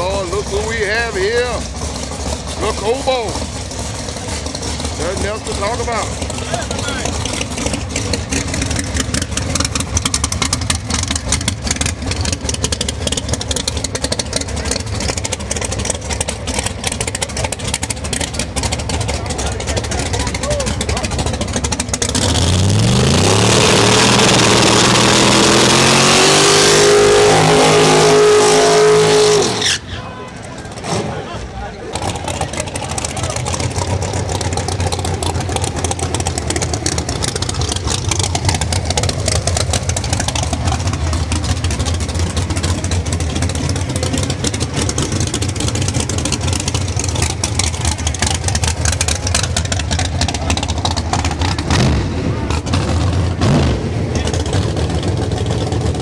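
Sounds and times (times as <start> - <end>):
car engine revving: 0.0 - 29.8, 30.5 - 56.0.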